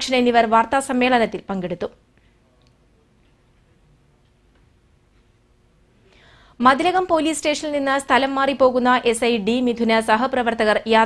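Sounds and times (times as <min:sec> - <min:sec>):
faint low hum and hiss: 0:00.0 - 0:11.0.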